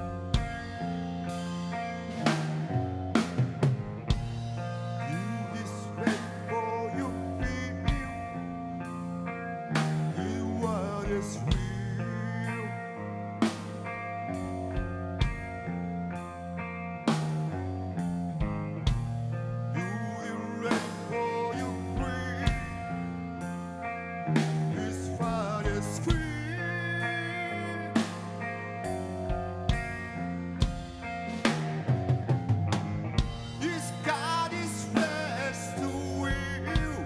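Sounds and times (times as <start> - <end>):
electric guitar chords: 0.0 - 37.0
drum and cymbal hits: 2.2 - 4.7, 30.6 - 34.4.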